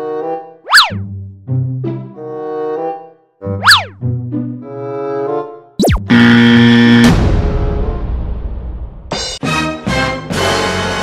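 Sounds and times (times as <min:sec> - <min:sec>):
harsh buzzer tone: 0:05.8 - 0:07.2.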